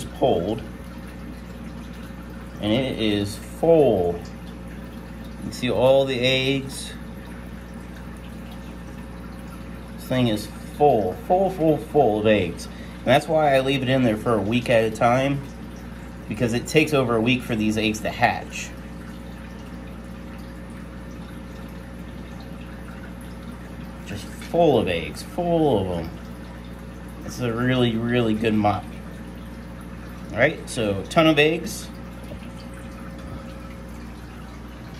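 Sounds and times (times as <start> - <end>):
aquarium equipment hum: 0.0 - 34.9
faint water sounds: 0.0 - 34.9.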